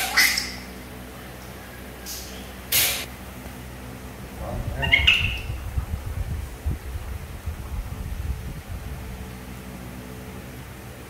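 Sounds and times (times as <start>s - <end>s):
baby monkey squealing: 0.0s - 0.7s, 4.7s - 5.6s
low rumble: 3.0s - 9.6s.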